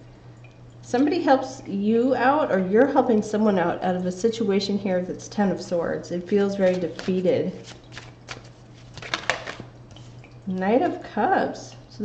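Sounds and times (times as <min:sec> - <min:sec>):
cards tapping on wooden table: 0:09.0 - 0:09.6.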